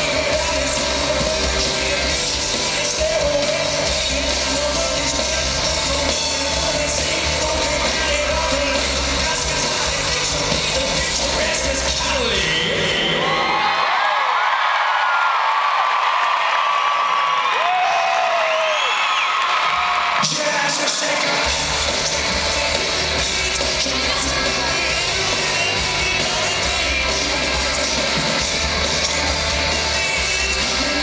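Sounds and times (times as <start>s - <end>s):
live rock band playing: 0.0s - 13.2s, 20.3s - 31.0s
crowd cheering and whooping: 12.8s - 23.2s.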